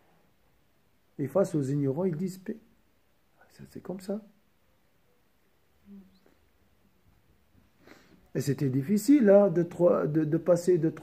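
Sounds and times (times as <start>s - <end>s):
short low vocal sound: 5.8s - 6.4s.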